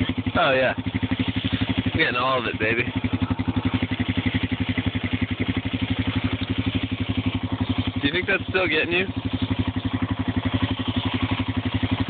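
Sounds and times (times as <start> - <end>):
atv engine running: 0.0 - 12.0.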